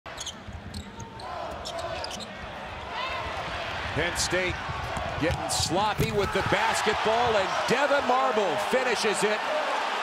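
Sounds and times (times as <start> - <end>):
sneakers squeaking: 0.1 - 2.4
arena crowd noise: 0.1 - 10.0.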